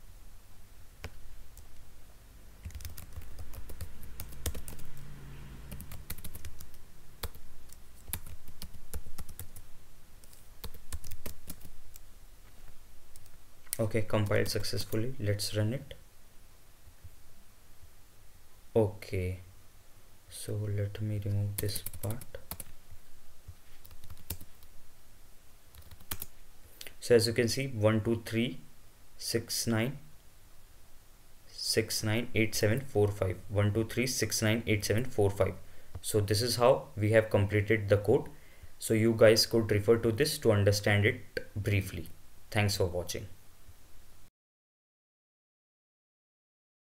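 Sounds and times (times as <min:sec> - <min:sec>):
typing on a computer keyboard: 0:02.6 - 0:05.0, 0:05.7 - 0:09.6, 0:10.2 - 0:12.0, 0:21.6 - 0:22.7, 0:23.8 - 0:24.7, 0:25.7 - 0:26.3.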